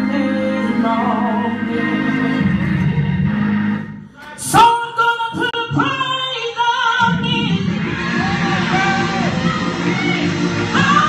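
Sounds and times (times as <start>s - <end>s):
live gospel music: 0.0s - 11.0s.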